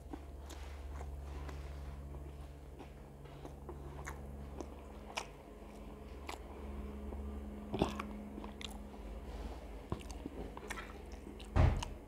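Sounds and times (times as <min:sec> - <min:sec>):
steady low hum: 0:00.0 - 0:12.0
wet mouth clicks chewing: 0:02.8 - 0:08.9, 0:09.9 - 0:11.9.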